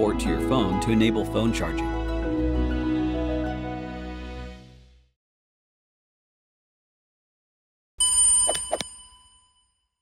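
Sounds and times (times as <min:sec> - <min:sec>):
metallic bell ding: 0:08.0 - 0:10.0.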